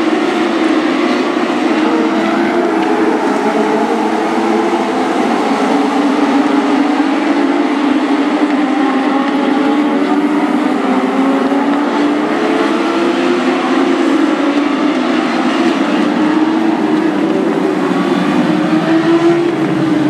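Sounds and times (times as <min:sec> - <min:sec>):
race car engines at high revs: 0:00.0 - 0:20.0.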